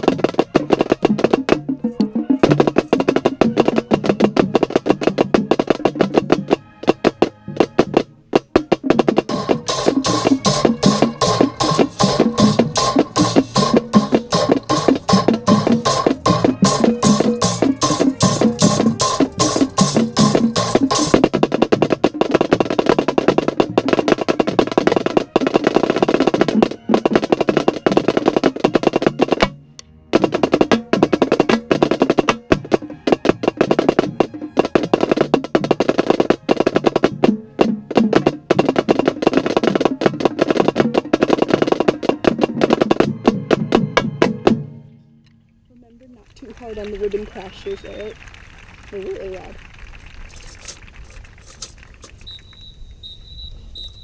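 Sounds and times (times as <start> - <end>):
marching snare drum rolls: 0.0 - 29.6, 30.2 - 44.8, 46.3 - 54.0
marching band playing: 0.0 - 45.0, 46.0 - 54.0.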